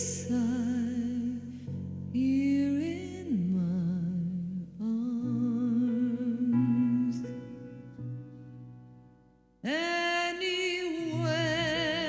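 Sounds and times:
woman singing with vibrato: 0.0s - 7.6s, 9.6s - 12.0s
soft musical accompaniment: 0.0s - 12.0s.

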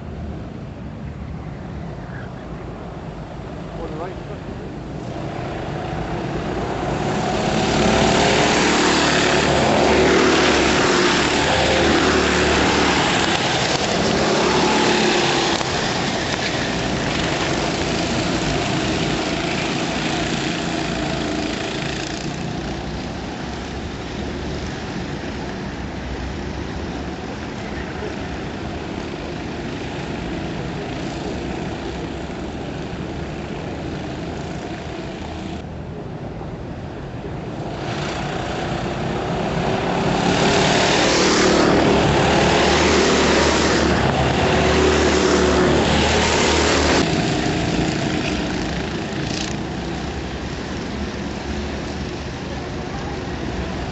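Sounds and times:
go-kart engines passing: 0.0s - 53.9s.

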